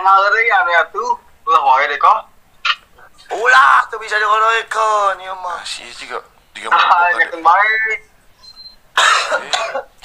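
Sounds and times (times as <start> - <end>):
person coughing: 9.0 - 10.0.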